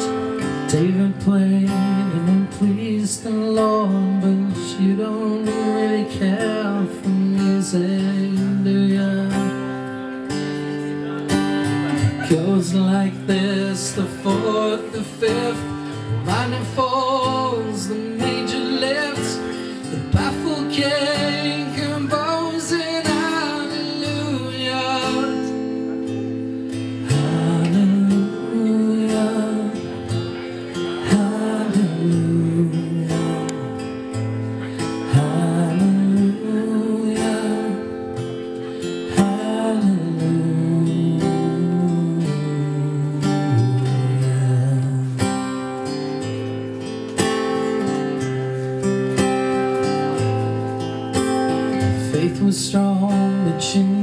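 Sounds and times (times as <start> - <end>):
man singing: 0.0 - 46.4, 51.5 - 54.0
strummed acoustic guitar: 0.0 - 54.0.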